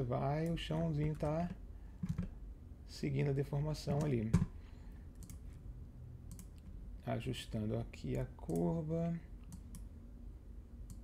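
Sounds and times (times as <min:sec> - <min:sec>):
computer mouse clicking: 0:05.2 - 0:05.4, 0:06.3 - 0:06.7, 0:09.4 - 0:09.9.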